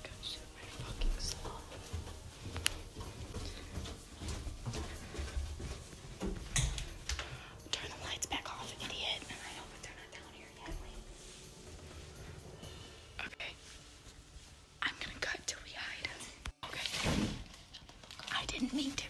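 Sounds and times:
soft whispering: 0.0 - 2.0, 7.6 - 11.5, 12.7 - 17.1, 18.2 - 19.0
footsteps on carpeted stairs: 0.6 - 7.6.

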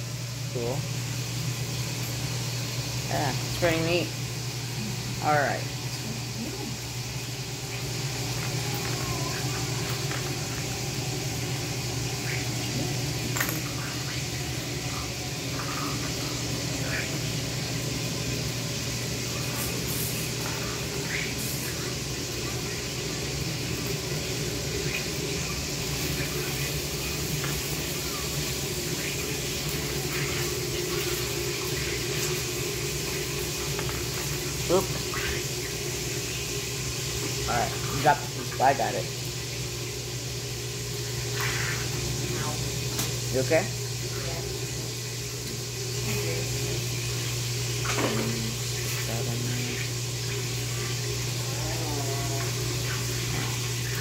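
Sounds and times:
dishwasher running: 0.0 - 54.0.

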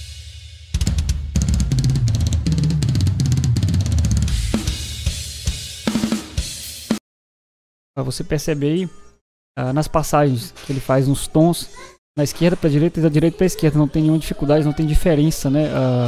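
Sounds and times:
fast drum kit playing: 0.0 - 7.0.

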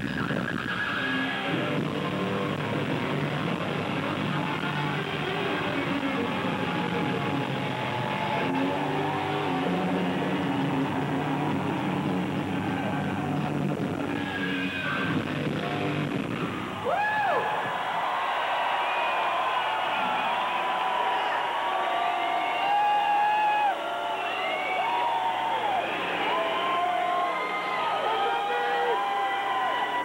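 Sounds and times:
concert crowd cheering: 0.0 - 30.0.

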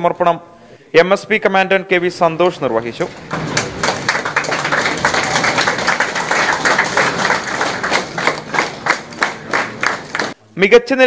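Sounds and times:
people applauding: 3.1 - 10.4.

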